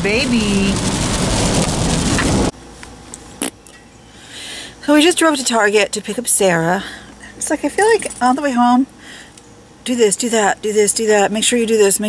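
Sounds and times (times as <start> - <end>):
heavy rain drumming on car roof: 0.0 - 2.5
road noise: 0.0 - 2.5.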